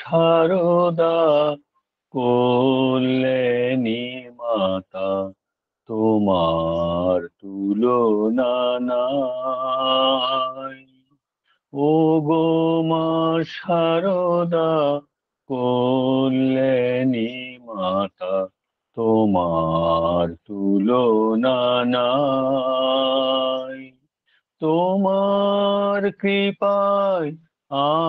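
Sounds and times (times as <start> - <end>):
man singing devotional song: 0.0 - 11.0, 11.6 - 28.0
man singing long held notes: 5.9 - 10.8
breath: 11.3 - 11.7, 24.2 - 24.6.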